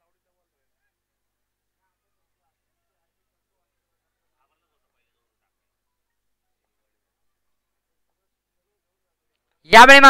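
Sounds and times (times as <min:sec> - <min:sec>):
faint distant voices: 0:00.0 - 0:09.6.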